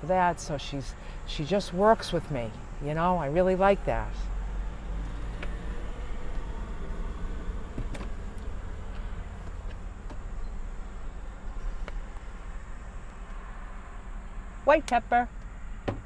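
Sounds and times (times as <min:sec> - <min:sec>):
low vehicle rumble: 0:00.0 - 0:16.0.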